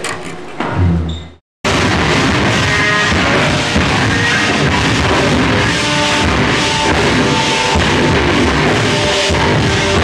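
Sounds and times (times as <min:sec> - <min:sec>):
bass guitar note: 0:00.6 - 0:10.0
metal band playing live: 0:01.7 - 0:10.0.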